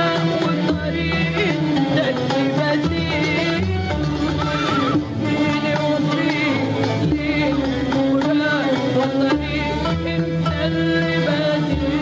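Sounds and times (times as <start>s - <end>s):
orchestra playing arabic music: 0.0s - 12.0s.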